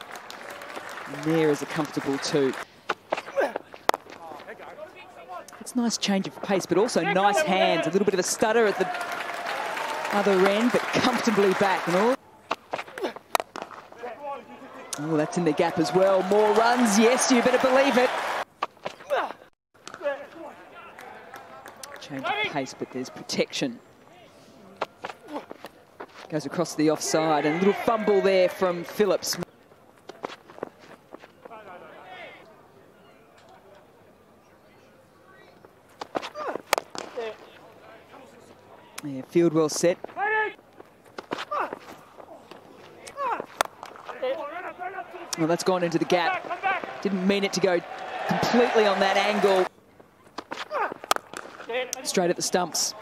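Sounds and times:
faint voices of players: 41.5s - 51.0s
shouted calls: 44.2s - 49.7s.

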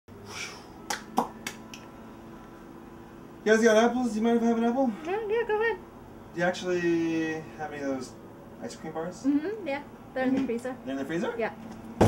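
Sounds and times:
finger snaps: 0.9s - 1.9s.

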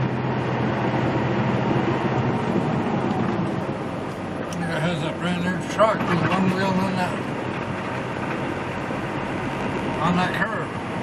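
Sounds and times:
truck engine and road drone: 0.0s - 11.0s.

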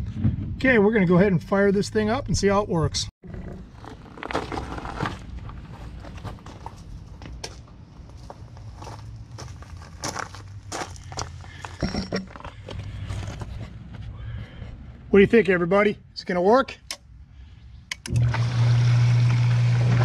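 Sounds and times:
pump humming: 18.1s - 20.0s.

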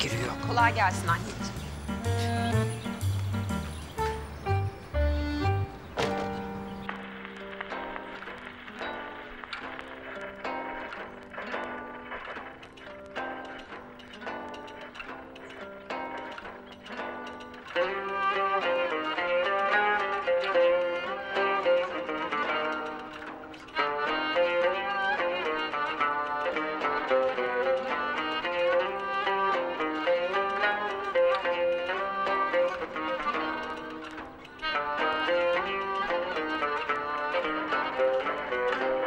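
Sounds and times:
violin over plucked strings: 0.0s - 39.0s.

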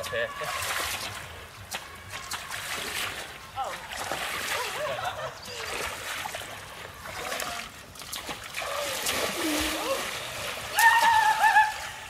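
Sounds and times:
legs splashing through water: 0.0s - 12.0s.

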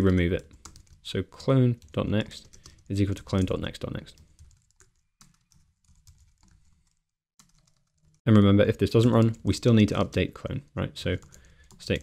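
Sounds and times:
typing on a keyboard: 0.0s - 1.0s, 1.8s - 8.2s, 11.1s - 12.0s.

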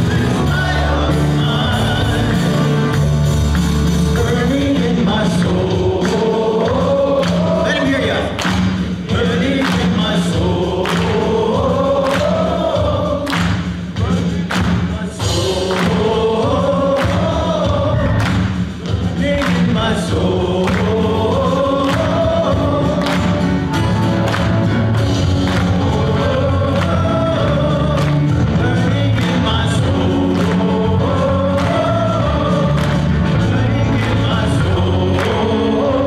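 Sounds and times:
drum kit beat: 0.0s - 36.0s
guitars: 0.0s - 36.0s
keyboard: 0.0s - 36.0s
men singing: 0.0s - 36.0s.

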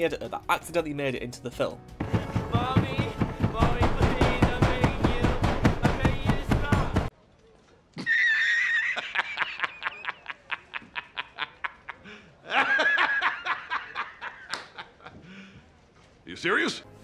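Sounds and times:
man laughing hard: 8.0s - 15.2s.

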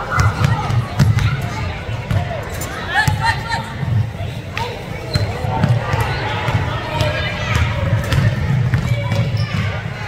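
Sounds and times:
voices in gym: 0.0s - 10.0s.

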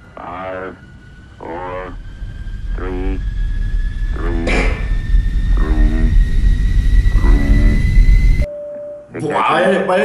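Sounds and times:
thin rising whine: 0.0s - 8.5s
rocket launch low rumble: 1.3s - 8.5s
steady beep: 1.4s - 9.2s.

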